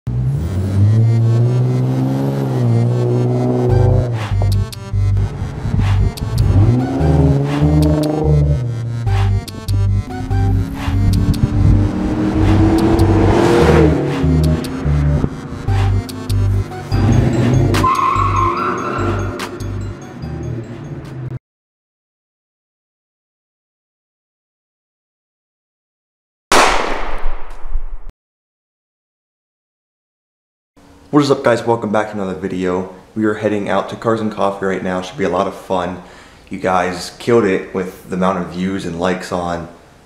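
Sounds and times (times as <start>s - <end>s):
car engine and exhaust running: 0.1s - 18.4s
music with heavy bass beat: 2.6s - 18.4s
high screeching tone: 17.0s - 19.6s.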